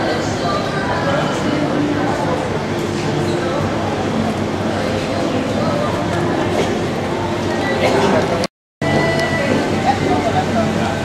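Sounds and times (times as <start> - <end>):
crowd chatter indoors: 0.0 - 11.0.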